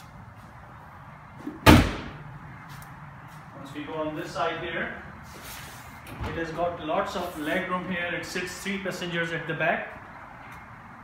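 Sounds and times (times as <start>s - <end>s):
car trunk slamming shut: 1.5s - 2.2s.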